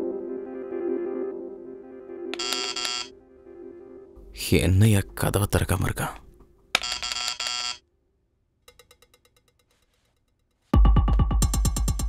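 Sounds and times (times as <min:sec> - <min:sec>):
electric doorbell buzzing: 0:02.4 - 0:03.1, 0:06.8 - 0:07.8.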